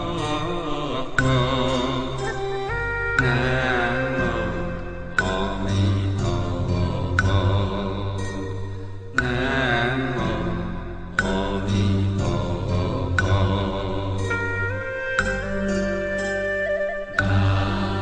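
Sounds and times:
devotional chant singing: 0:00.0 - 0:15.8, 0:17.1 - 0:18.0
steady musical backing: 0:00.0 - 0:18.0.

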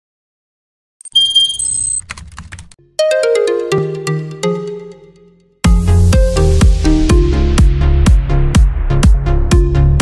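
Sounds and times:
typing-like clicks: 0:01.0 - 0:02.8
electronic jingle: 0:03.0 - 0:05.3.

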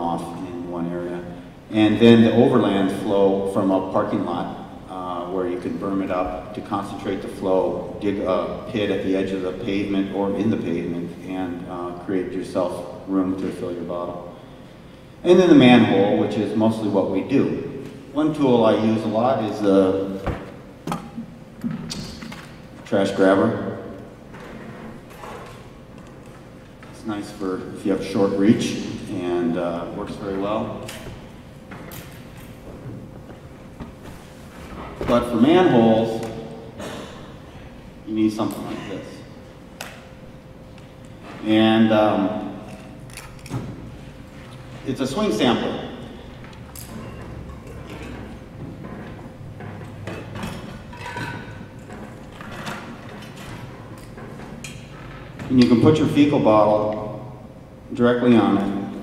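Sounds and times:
low hum of large hall: 0:00.0 - 0:59.0
knocks and clatter of handling: 0:46.8 - 0:55.6.

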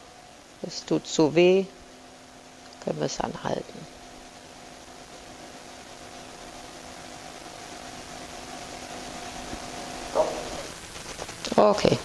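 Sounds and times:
electric motor humming: 0:00.0 - 0:12.0.

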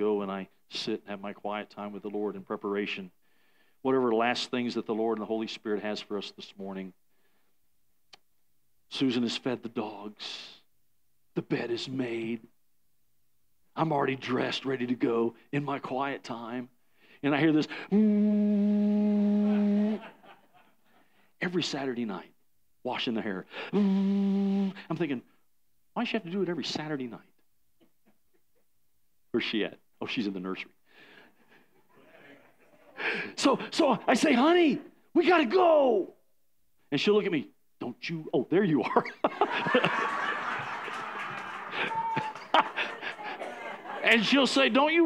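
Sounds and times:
man humming a buzzing tone: 0:17.9 - 0:20.1, 0:23.8 - 0:24.8
congregation laughing: 0:19.2 - 0:20.8, 0:31.4 - 0:33.2, 0:38.9 - 0:44.6.

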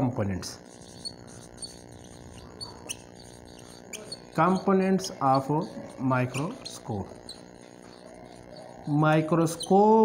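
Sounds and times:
faint steady hum: 0:00.0 - 0:10.0
whiteboard marker squeaking: 0:00.4 - 0:10.0.

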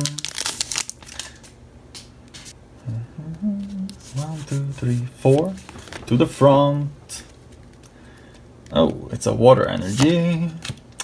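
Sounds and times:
foil wrapper tearing and crinkling: 0:00.0 - 0:01.5.

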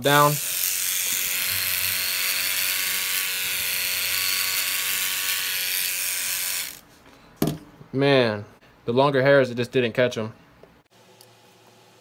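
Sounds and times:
hair trimmer buzzing: 0:00.0 - 0:06.8.

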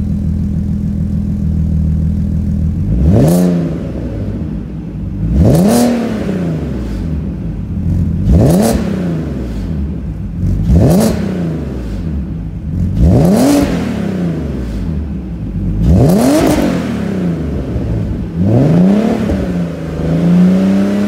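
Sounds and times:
car engine revving: 0:02.4 - 0:21.0.

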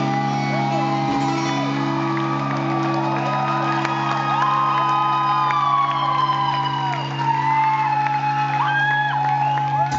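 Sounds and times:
audience whooping and shouting: 0:00.0 - 0:09.9
live rock band playing: 0:00.0 - 0:09.9.

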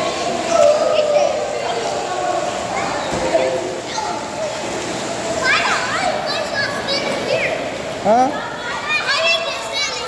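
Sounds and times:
children calling and squealing: 0:00.0 - 0:10.0.

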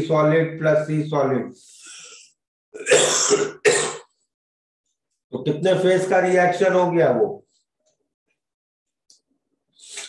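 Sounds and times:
man coughing: 0:02.8 - 0:04.1.

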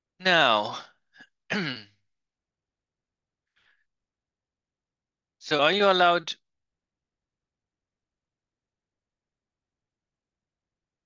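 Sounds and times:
man clearing his throat: 0:01.5 - 0:01.9.

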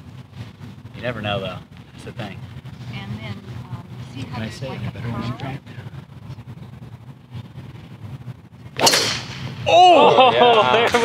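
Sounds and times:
golf club striking ball: 0:08.8 - 0:09.6.

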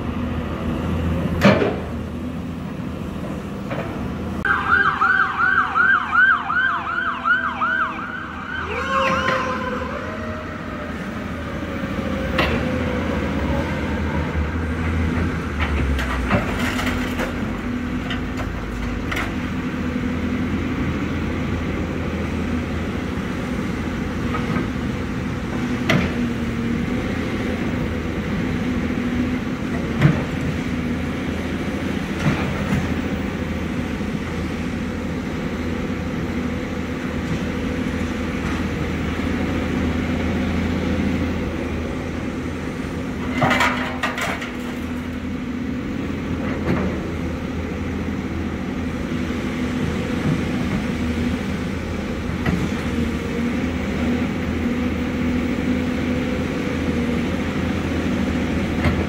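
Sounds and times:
emergency siren yelping: 0:04.4 - 0:12.4
excavator diesel engine running: 0:06.7 - 0:59.0.

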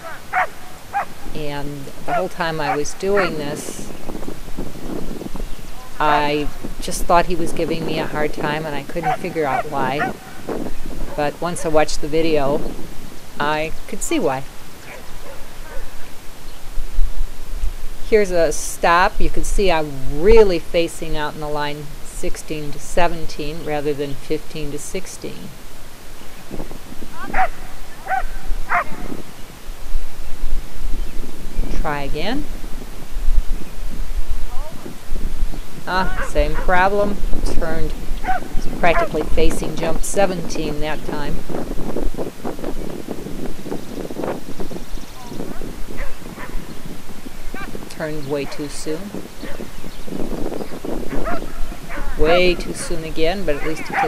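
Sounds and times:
dog barking: 0:00.0 - 0:01.1, 0:09.0 - 0:10.4, 0:14.9 - 0:16.0, 0:27.3 - 0:29.1, 0:38.2 - 0:39.2, 0:51.2 - 0:52.9, 0:53.5 - 0:54.0
wind rumbling on microphone: 0:00.0 - 0:54.0.

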